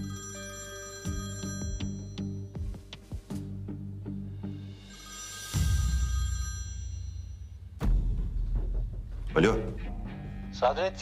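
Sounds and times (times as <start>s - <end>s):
bell-like ringtone: 0.0s - 3.0s, 4.5s - 7.8s.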